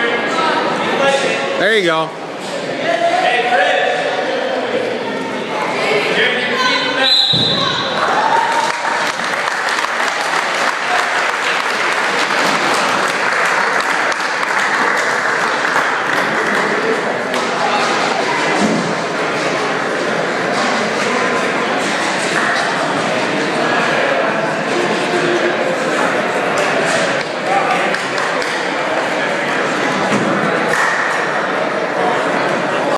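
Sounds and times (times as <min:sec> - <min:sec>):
crowd shouting and cheering: 0:01.6 - 0:32.9
people clapping: 0:08.0 - 0:18.1, 0:22.2 - 0:22.8, 0:26.6 - 0:28.8, 0:30.6 - 0:31.3.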